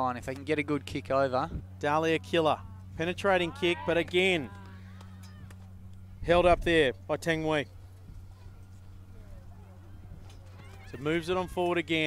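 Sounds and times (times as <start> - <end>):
distant voices: 0.0 - 12.0
low electrical hum: 0.0 - 12.0.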